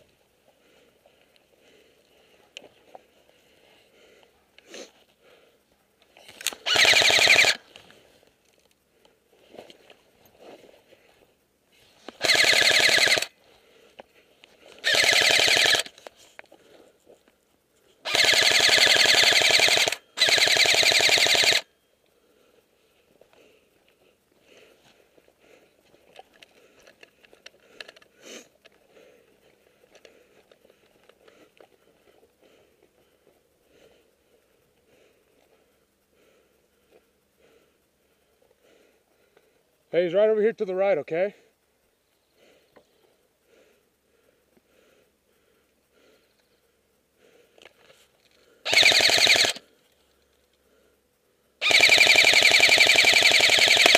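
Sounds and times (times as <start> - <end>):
faint rustling of movement: 0.0 - 6.7, 7.6 - 12.2, 15.9 - 18.1, 21.7 - 48.7
airsoft rifle firing bursts: 6.6 - 7.6, 12.2 - 13.3, 14.8 - 16.0, 18.0 - 21.7, 48.7 - 49.6, 51.6 - 53.9.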